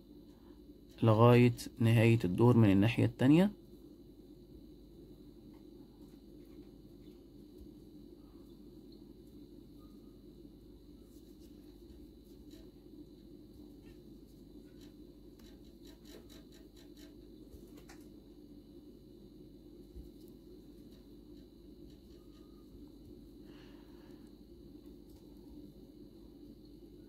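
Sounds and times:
faint room hum: 0:00.0 - 0:27.0.

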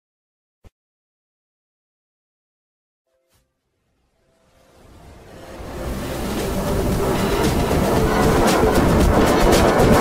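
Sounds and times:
distorted noisy logo soundtrack: 0:03.7 - 0:10.0.

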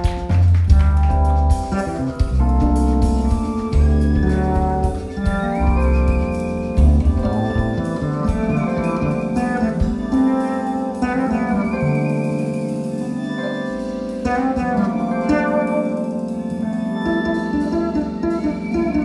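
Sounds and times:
drum kit: 0:00.0 - 0:19.0
electric bass guitar: 0:00.0 - 0:19.0
keyboard: 0:00.0 - 0:19.0
violin melody: 0:00.0 - 0:19.0.

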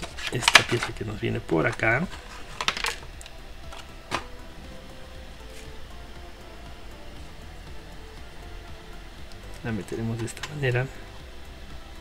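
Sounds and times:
plastic parts clicking: 0:00.0 - 0:01.0, 0:01.7 - 0:04.3
faint background music: 0:00.0 - 0:12.0.

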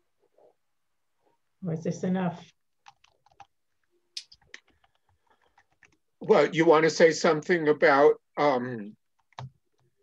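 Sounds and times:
keyboard typing clicks: 0:02.8 - 0:03.5, 0:09.2 - 0:09.9.

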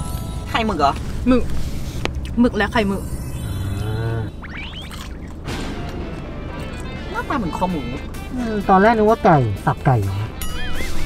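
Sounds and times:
low cartoon tone: 0:02.6 - 0:05.1.

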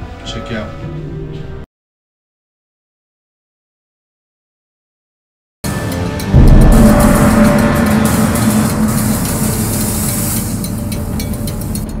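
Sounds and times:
sustained sound effect: 0:05.7 - 0:12.0
sudden hit: 0:06.3 - 0:11.8.

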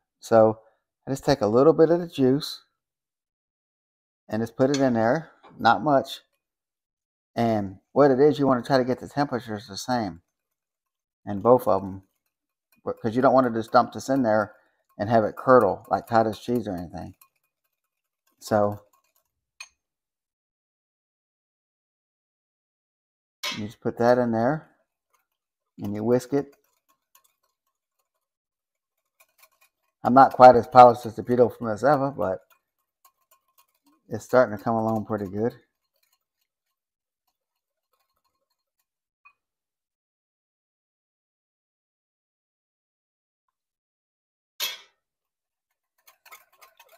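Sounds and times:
whisk clicking against glass bowl: 0:08.4 - 0:19.8, 0:23.9 - 0:38.9, 0:45.7 - 0:46.9
metal utensil clinking cookware: 0:11.3 - 0:19.7, 0:23.4 - 0:24.4, 0:29.0 - 0:36.5.

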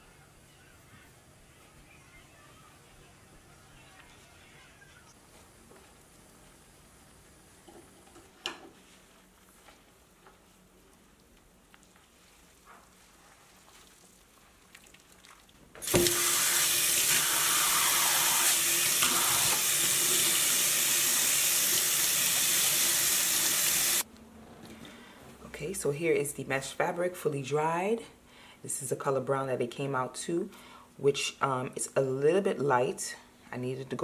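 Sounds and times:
tap running into steel sink: 0:15.8 - 0:16.2.

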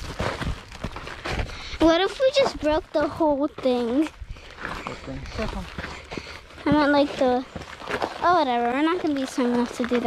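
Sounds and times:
footsteps on dry grass and rocks: 0:00.0 - 0:10.0.

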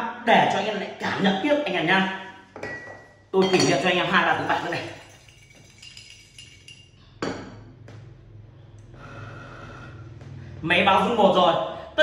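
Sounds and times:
ceramic bowl and plate clinking: 0:02.6 - 0:07.7.

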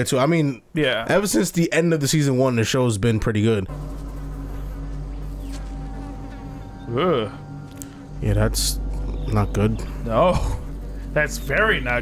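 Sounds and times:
low buzzing hum: 0:02.4 - 0:12.0
faint higher tone: 0:04.5 - 0:10.1.

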